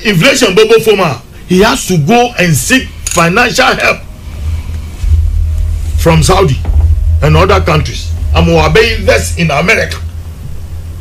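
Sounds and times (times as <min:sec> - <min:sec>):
steady low rumble: 0:01.2 - 0:11.0.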